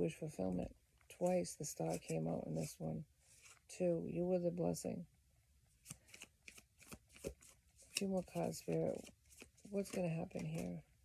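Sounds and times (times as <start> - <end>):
cards being shuffled: 1.1 - 3.7, 5.8 - 10.8.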